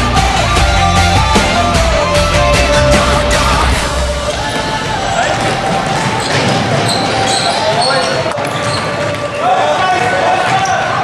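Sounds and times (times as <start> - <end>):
voices calling out: 1.4 - 11.0.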